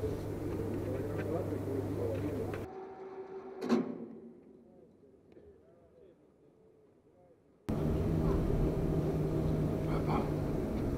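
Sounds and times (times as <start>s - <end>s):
voices: 0.0s - 2.7s, 4.6s - 10.9s
low engine hum: 7.7s - 10.9s.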